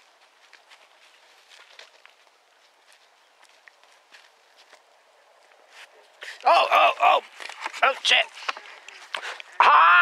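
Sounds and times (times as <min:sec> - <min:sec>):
faint soft clicks and rustles: 0:00.0 - 0:06.5.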